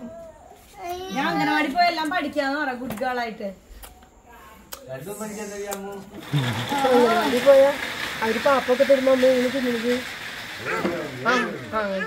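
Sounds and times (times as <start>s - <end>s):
woman talking to toddler: 1.1s - 3.3s
steady hiss: 3.6s - 12.0s.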